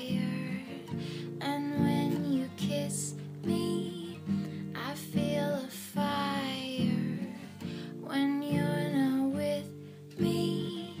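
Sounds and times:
woman singing: 0:00.0 - 0:11.0.

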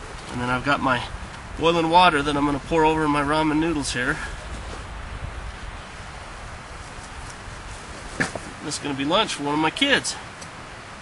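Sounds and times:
wind rumble on microphone: 0:00.0 - 0:09.3.

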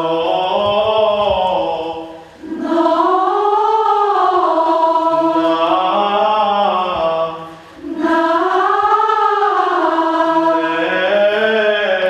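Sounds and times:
mixed choir singing: 0:00.0 - 0:12.0.

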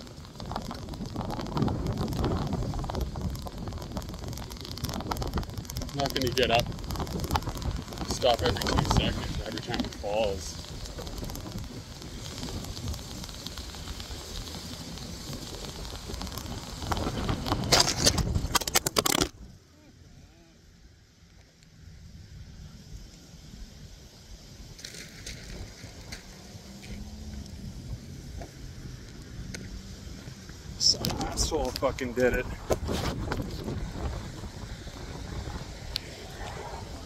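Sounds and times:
wind and road rumble: 0:00.0 - 0:37.0.

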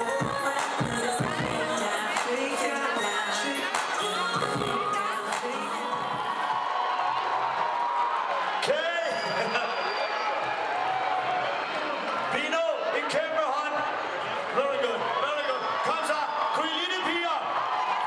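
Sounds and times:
crowd noise in a tent: 0:00.0 - 0:18.0.

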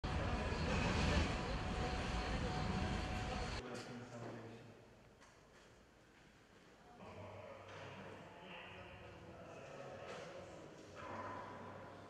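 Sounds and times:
city street noise: 0:00.0 - 0:03.6
low rumble: 0:00.0 - 0:03.6.

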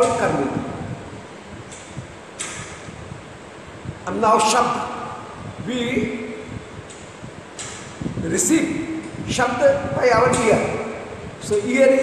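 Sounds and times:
room noise hiss: 0:00.0 - 0:12.0
soft rush of noise: 0:00.0 - 0:12.0.

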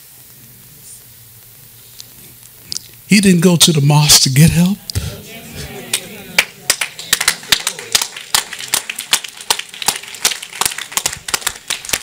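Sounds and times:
faint voices: 0:04.9 - 0:08.0
people clapping: 0:04.9 - 0:12.0.

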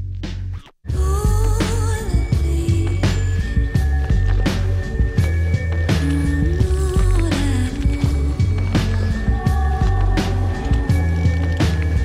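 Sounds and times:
music with held chords and bass: 0:00.0 - 0:12.0.

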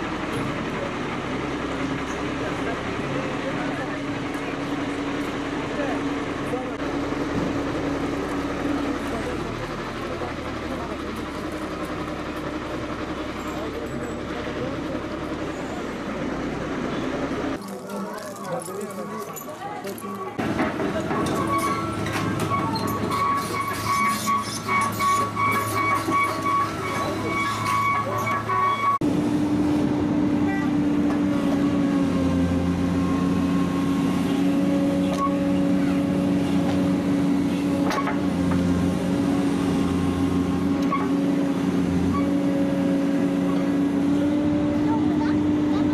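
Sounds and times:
excavator diesel engine: 0:00.0 - 0:45.9
truck engine: 0:00.0 - 0:45.9.

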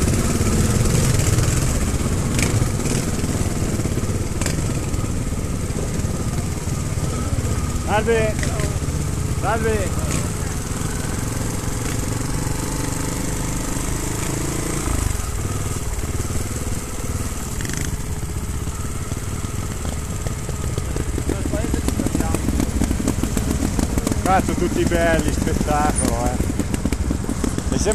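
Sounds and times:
motorcycle engine at low revs: 0:00.0 - 0:27.9.

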